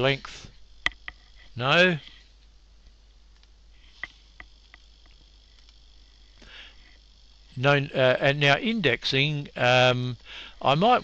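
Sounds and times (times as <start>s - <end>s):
faint high-pitched whine: 0.0s - 11.0s
computer mouse clicks: 2.8s - 5.8s.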